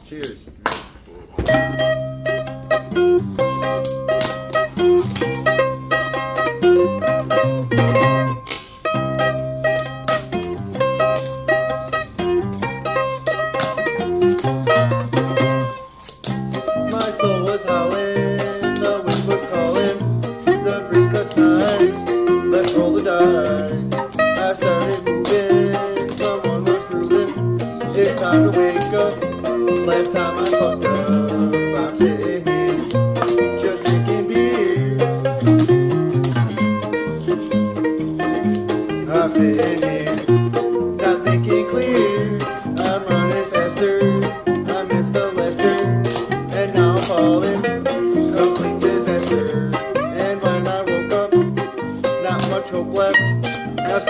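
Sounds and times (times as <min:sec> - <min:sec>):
song with plucked strings: 0:01.4 - 0:54.0.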